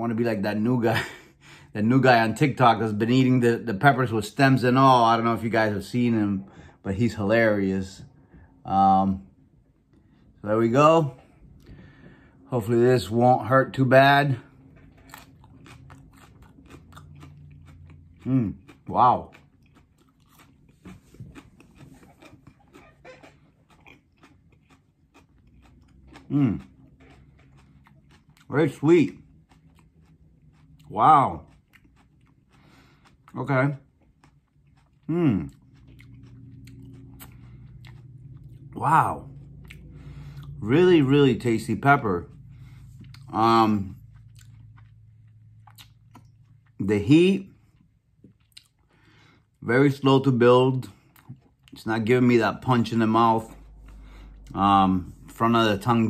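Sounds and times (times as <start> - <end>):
chili pepper crunching: 12.7 - 49.3, 49.9 - 56.0.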